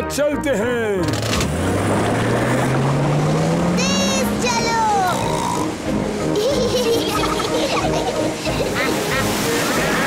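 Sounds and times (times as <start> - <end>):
cartoon motorboat engine: 1.0 - 9.2.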